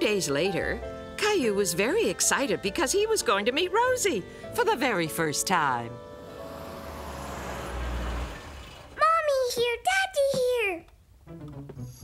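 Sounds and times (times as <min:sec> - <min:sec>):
car engine rumbling: 0:06.2 - 0:09.0.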